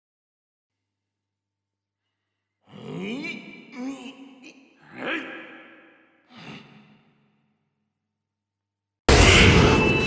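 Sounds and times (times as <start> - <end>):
voice crying out with echo: 2.7 - 6.6.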